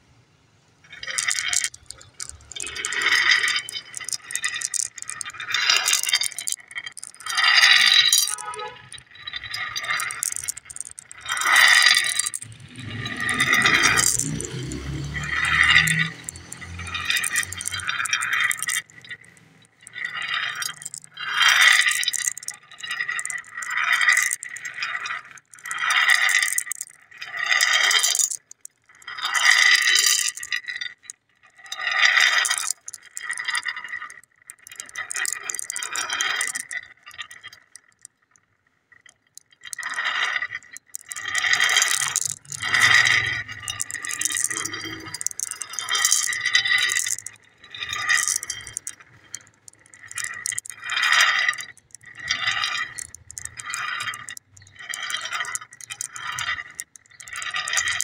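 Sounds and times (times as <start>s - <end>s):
glass marbles clattering on glass: 0.8s - 58.0s.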